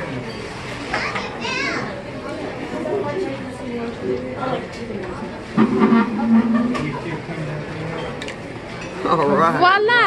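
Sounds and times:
restaurant chatter: 0.0s - 10.0s
children's voices: 0.9s - 2.1s.

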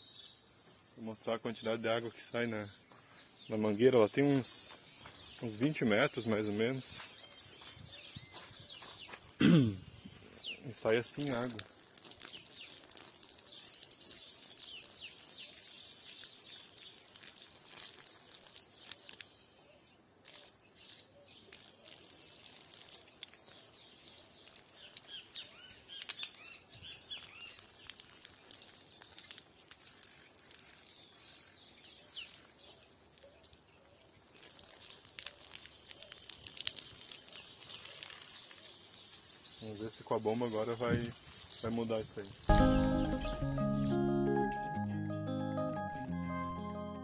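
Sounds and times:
small birds chirping: 0.0s - 44.0s
high whistled bird notes: 42.5s - 44.4s.

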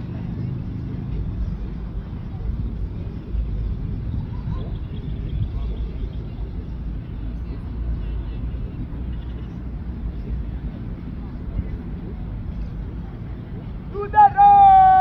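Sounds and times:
wind rumble on microphone: 0.0s - 14.0s
faint distant voices: 0.0s - 15.0s.

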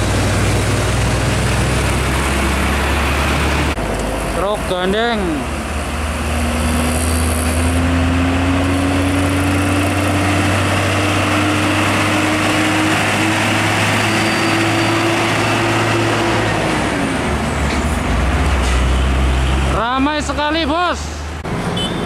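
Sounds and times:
diesel truck engine: 0.0s - 22.0s
tyre and road noise: 0.0s - 22.0s.

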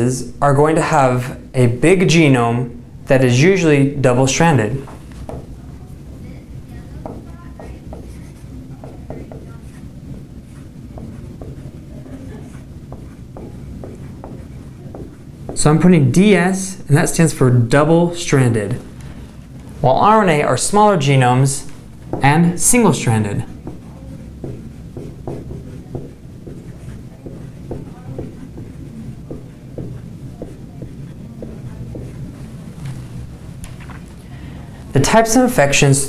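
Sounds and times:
low room hum: 0.0s - 36.0s
marker squeaking on whiteboard: 6.7s - 15.7s, 21.6s - 34.2s.

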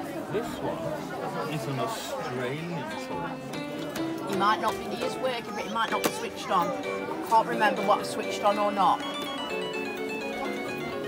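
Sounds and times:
toy keyboard melody: 4.4s - 11.0s.

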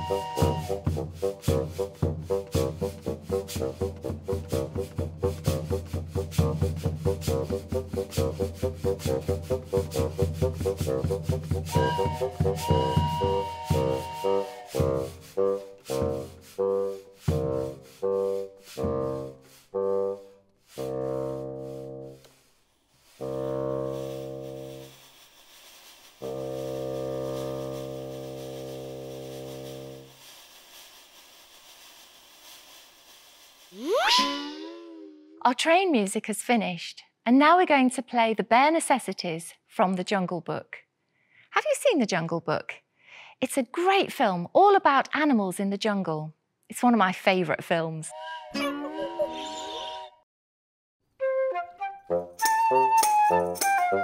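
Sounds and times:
woodwinds with hand percussion: 0.0s - 17.8s, 33.8s - 35.4s, 48.1s - 49.8s, 51.2s - 54.0s
swooping sound effect: 33.8s - 35.4s.

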